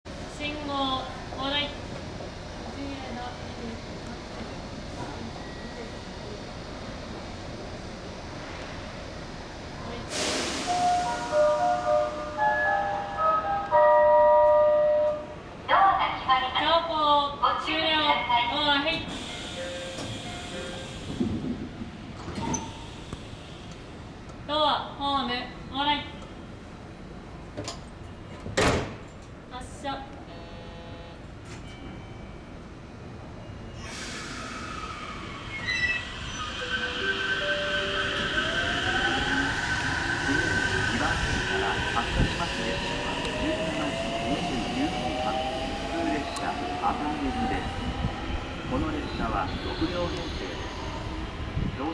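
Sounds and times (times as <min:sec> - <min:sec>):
station and train noise: 0:00.1 - 0:51.9
train doors sliding closed: 0:10.0 - 0:13.6, 0:18.9 - 0:23.9, 0:27.5 - 0:29.4
wheels rumbling on rail: 0:37.5 - 0:51.9.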